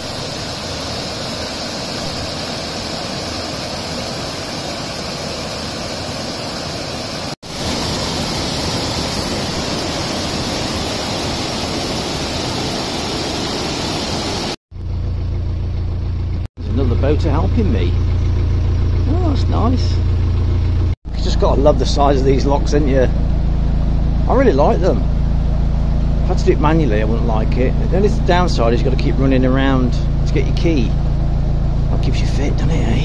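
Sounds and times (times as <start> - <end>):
low boat engine rumble: 0.0 - 33.0.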